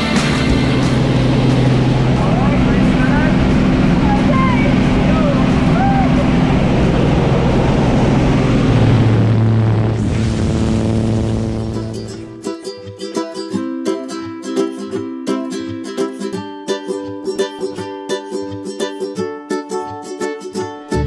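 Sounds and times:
light aircraft engine droning: 0.0s - 12.4s
voices calling out: 2.1s - 7.3s.

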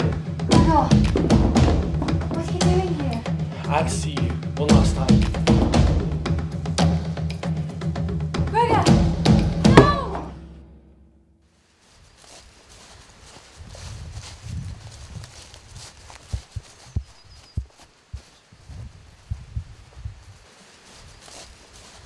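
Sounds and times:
sharp thumps: 8.3s - 11.4s
feet scuffling through dry leaves: 11.5s - 22.0s.

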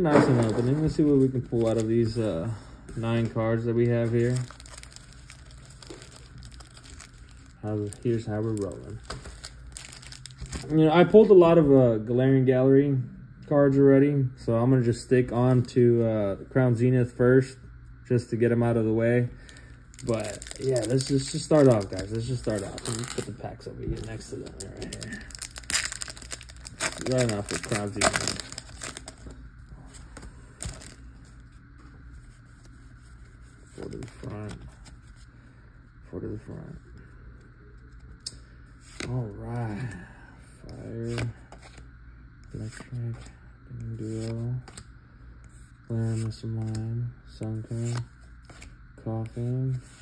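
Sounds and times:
foil wrappers crinkling: 0.1s - 2.3s, 3.0s - 10.8s, 19.4s - 31.4s
trading cards rustling and clicking: 0.2s - 10.7s, 19.6s - 31.4s, 42.5s - 44.9s.

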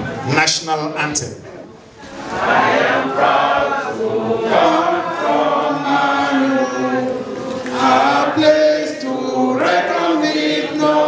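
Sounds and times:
voices singing chant-like song: 2.1s - 11.0s.

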